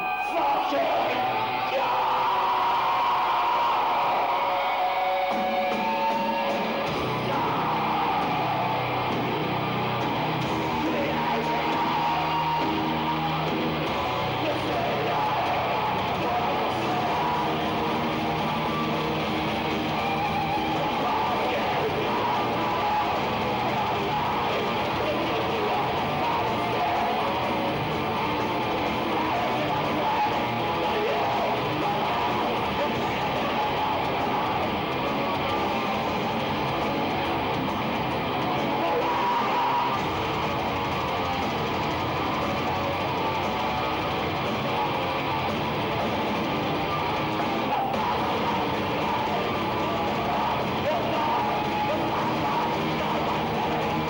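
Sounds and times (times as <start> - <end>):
bass: 0.0 - 54.0
distorted electric guitars: 0.0 - 54.0
drums: 0.0 - 54.0
harsh vocals: 0.0 - 54.0.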